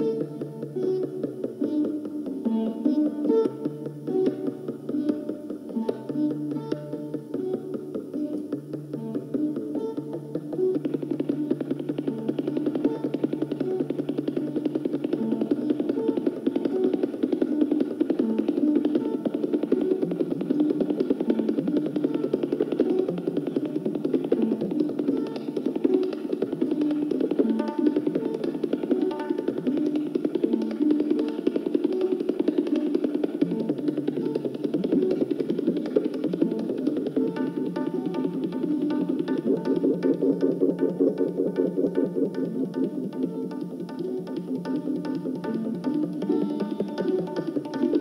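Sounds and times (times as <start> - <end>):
rapid tabla strokes: 0.0 - 48.0
stringed instrument melody: 0.0 - 48.0.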